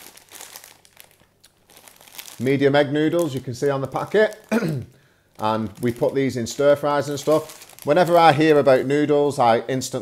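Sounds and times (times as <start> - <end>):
plastic packet crinkling: 0.0 - 4.6, 5.3 - 9.4.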